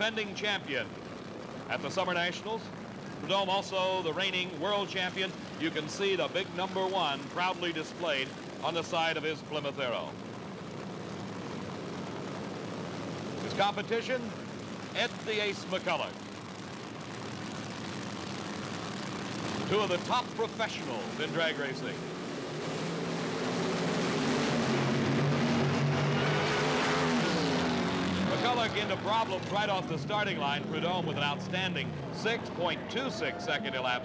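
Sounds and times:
race car engine idling: 0.0 - 34.0.

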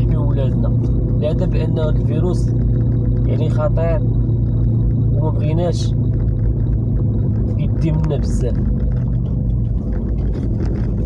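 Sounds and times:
car engine and tyre hum: 0.0 - 11.0.

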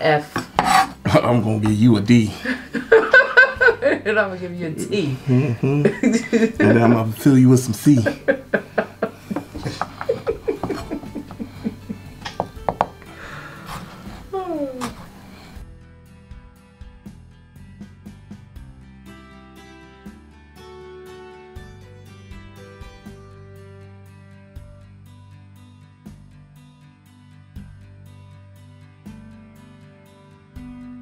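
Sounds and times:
background music: 0.0 - 31.0
knife chopping on cutting board: 0.4 - 1.0, 9.3 - 11.4, 12.3 - 13.0
person laughing: 2.4 - 4.1, 5.2 - 7.1, 7.9 - 12.2.

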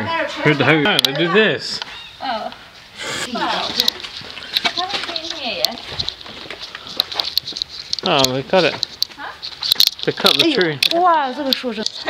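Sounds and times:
indistinct voices: 1.8 - 5.9.

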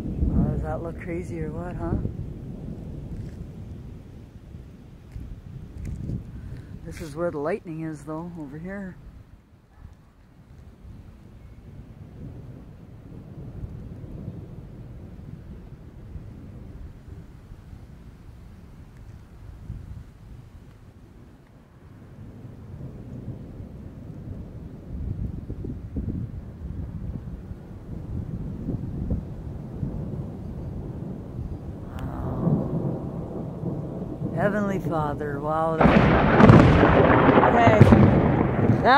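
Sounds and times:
lightning crack: 0.0 - 9.0, 11.7 - 17.8, 22.2 - 38.9
thunder rumbling: 0.0 - 38.9.

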